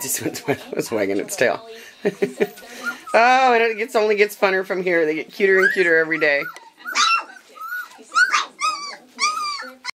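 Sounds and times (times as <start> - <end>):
puppy whining: 2.4 - 4.0, 5.4 - 10.0.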